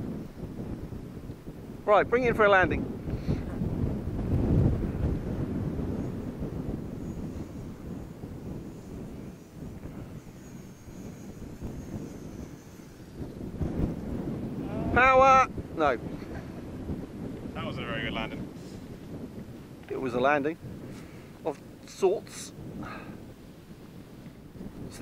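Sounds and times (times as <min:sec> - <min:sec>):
wind buffeting microphone: 0:00.0 - 0:25.0
high electric motor whine: 0:02.3 - 0:18.6.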